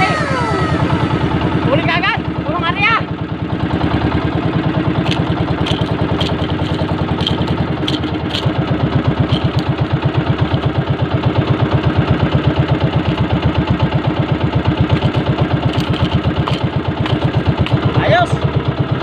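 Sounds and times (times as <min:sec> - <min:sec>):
boat engine chugging: 0:00.0 - 0:19.0.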